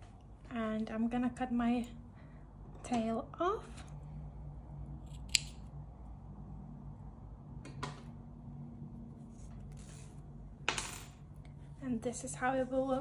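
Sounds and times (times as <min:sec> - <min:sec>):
scissors snipping yarn: 0:05.0 - 0:05.6.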